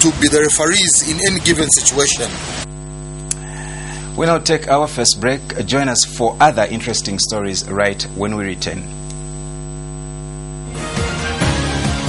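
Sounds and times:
electrical mains hum: 0.0 - 11.4
music: 10.7 - 12.0.

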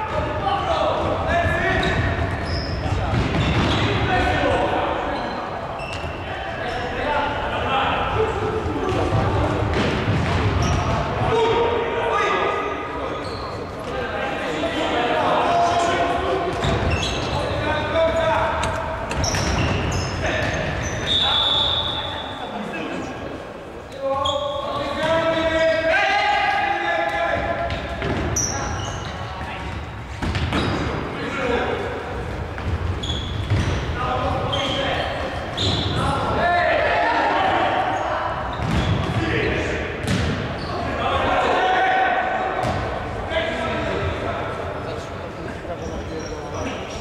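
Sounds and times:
players shouting in echoing hall: 0.0 - 47.0.

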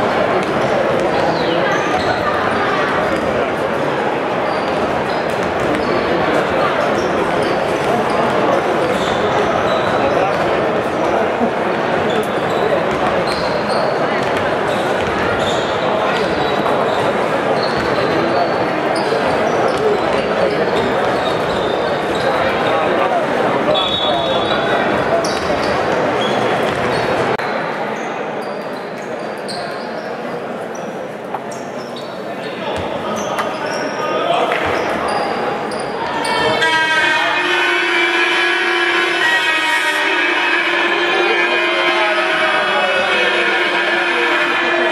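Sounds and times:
babble of voices: 0.0 - 44.9.

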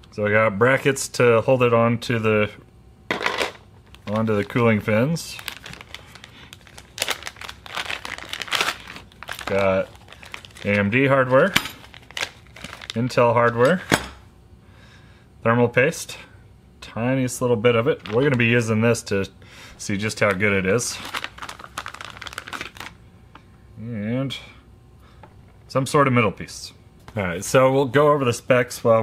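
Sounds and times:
plastic bag crinkling: 3.8 - 13.9, 20.1 - 23.0.

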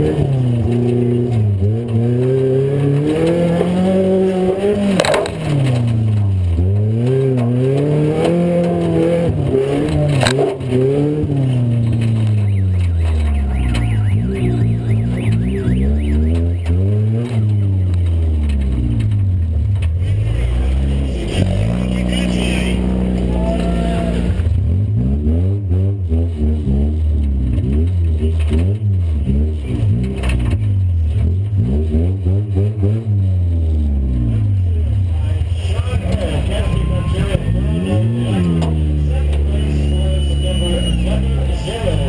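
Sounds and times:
race car engine revving: 0.0 - 42.0.

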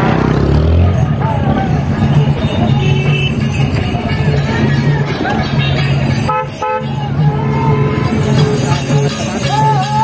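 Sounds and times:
traffic noise: 0.0 - 10.0
vehicle horn beeping: 2.4 - 3.9, 5.7 - 7.0.

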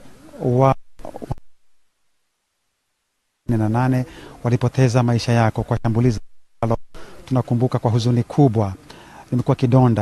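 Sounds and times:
man's voice: 3.5 - 10.0.

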